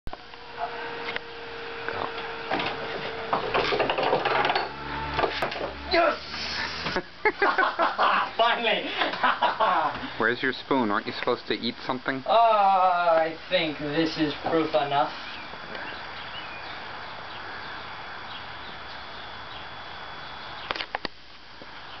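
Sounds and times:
background hiss: 0:05.7 - 0:22.0
faint high chirps: 0:15.1 - 0:20.8.

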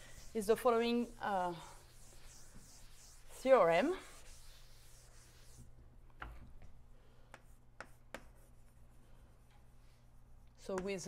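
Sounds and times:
chalk tapping on blackboard: 0:01.8 - 0:03.2, 0:07.3 - 0:08.8.

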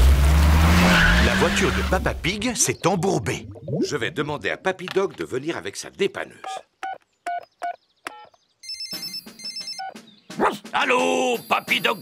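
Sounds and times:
keypad beep: 0:06.8 - 0:10.0
electronic ringtone trilling: 0:08.2 - 0:10.0.

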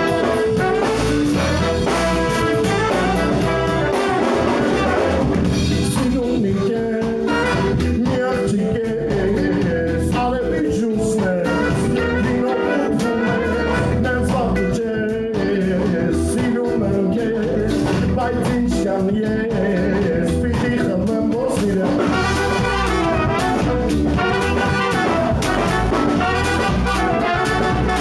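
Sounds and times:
horn section: 0:00.0 - 0:05.9, 0:07.1 - 0:08.1, 0:11.2 - 0:14.4, 0:22.0 - 0:28.0
live ska band playing: 0:00.0 - 0:28.0
male singer: 0:05.6 - 0:23.4.

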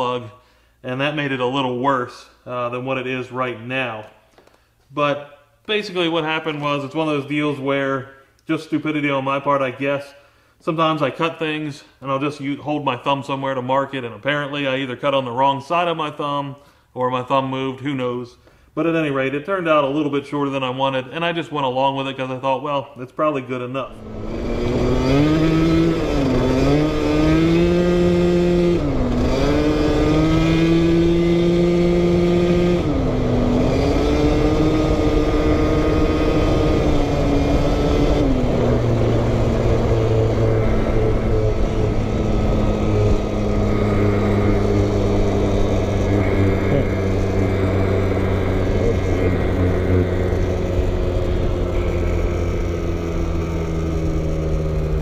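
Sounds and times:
scooter engine revving: 0:23.9 - 0:55.0.

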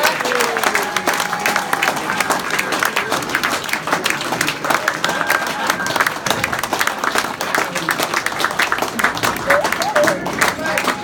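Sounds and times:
audience applauding: 0:00.0 - 0:11.0
voices in crowd: 0:00.0 - 0:11.0.

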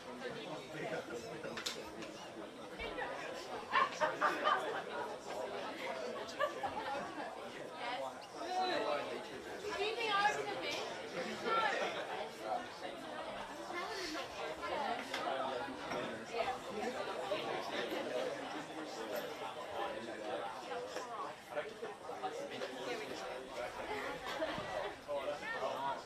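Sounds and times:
indistinct chatter of voices: 0:00.0 - 0:26.0.

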